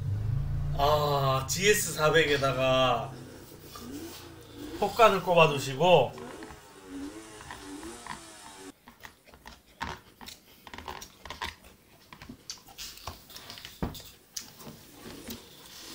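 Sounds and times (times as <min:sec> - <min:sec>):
two-stroke engine through speakers: 0:00.0 - 0:08.7.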